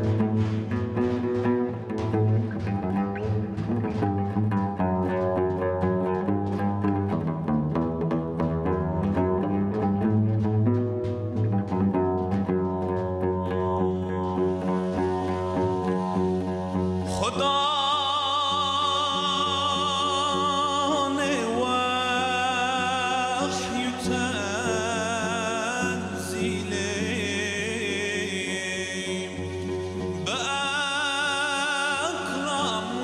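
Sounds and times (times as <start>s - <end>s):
oud playing plucked melody: 0.0s - 33.0s
man singing long wavering note: 12.7s - 33.0s.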